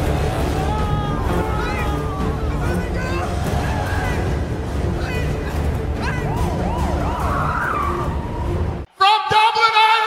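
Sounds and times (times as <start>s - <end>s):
police siren wailing: 6.1s - 8.8s.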